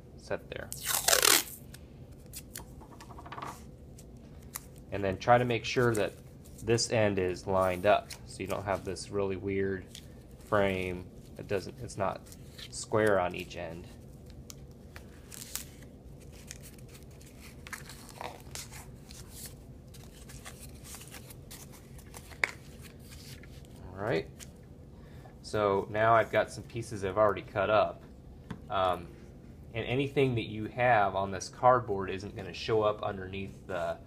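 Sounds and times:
tape torn off roll: 0:00.7 - 0:04.8
tape and cardboard rustling: 0:00.7 - 0:06.9, 0:09.9 - 0:24.5.

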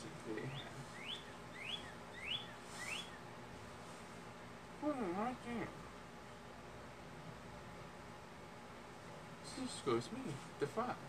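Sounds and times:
high whistle-like chirps: 0:00.6 - 0:03.2.

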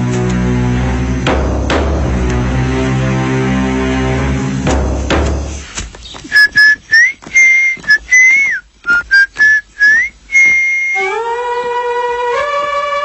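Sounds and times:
whistled tune: 0:06.3 - 0:11.2.

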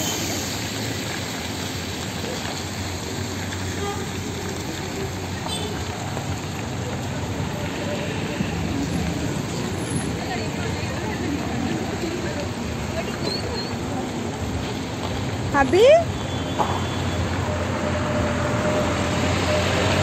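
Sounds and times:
traffic rushing past: 0:00.0 - 0:20.0
indistinct voices: 0:03.8 - 0:14.8.

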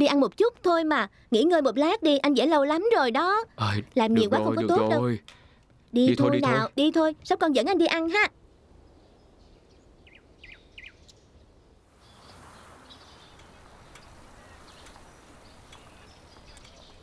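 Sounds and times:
outdoor background noise: 0:00.0 - 0:17.0
small birds chirping: 0:02.0 - 0:17.0.

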